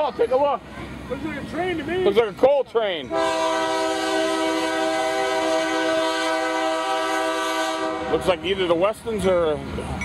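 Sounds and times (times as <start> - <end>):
locomotive horn blast: 3.1 - 8.6.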